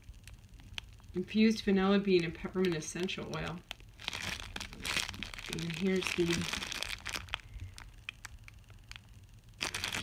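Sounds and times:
plastic bag crinkling: 2.1 - 10.0.

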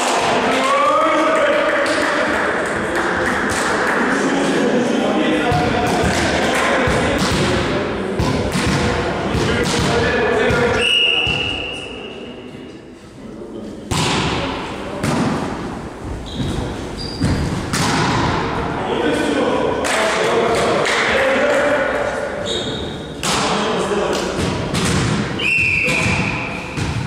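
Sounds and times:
players' voices: 0.0 - 27.0
short high whistle: 10.8 - 12.0, 25.4 - 26.5.

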